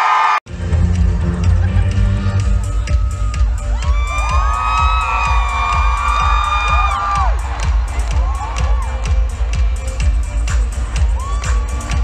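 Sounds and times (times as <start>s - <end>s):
fans screaming and cheering: 0.0s - 12.0s
live pop concert music: 0.0s - 12.0s.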